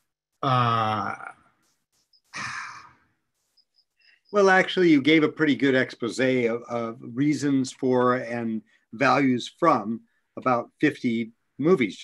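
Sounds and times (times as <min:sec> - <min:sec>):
man sighing: 0:00.4 - 0:01.4, 0:02.4 - 0:03.0.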